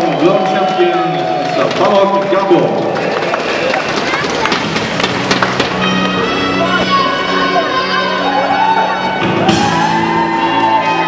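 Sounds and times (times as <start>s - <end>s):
scattered clapping: 0.0s - 6.2s
crowd voices: 0.0s - 11.0s
music with sustained notes: 4.7s - 11.0s.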